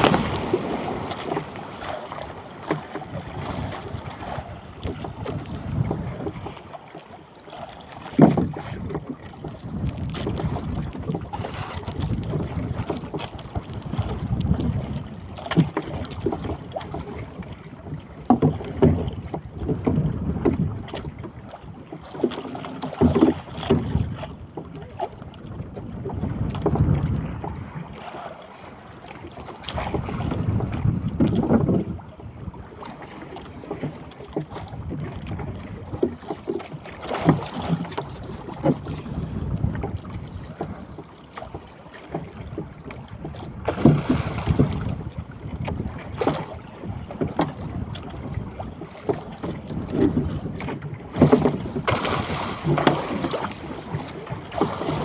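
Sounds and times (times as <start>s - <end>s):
wind buffeting microphone: 0.0s - 6.6s, 8.0s - 22.0s, 22.8s - 28.3s, 28.9s - 41.1s, 42.2s - 55.0s
water slapping against boat hull: 0.0s - 55.0s.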